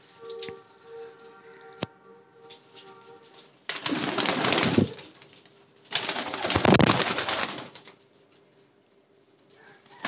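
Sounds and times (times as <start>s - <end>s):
pigeon wings flapping: 3.7s - 8.0s.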